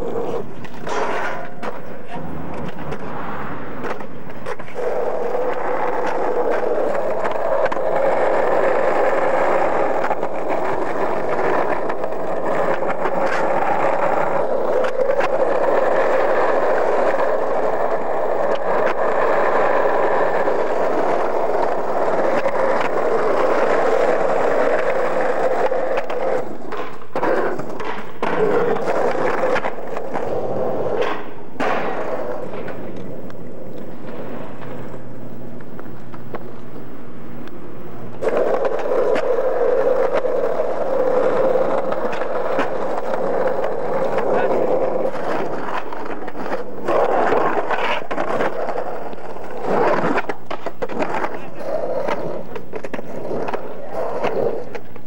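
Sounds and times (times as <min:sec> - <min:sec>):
skateboard clacks: 0:00.0 - 0:55.0
skateboard wheels rolling on asphalt: 0:00.0 - 0:55.0.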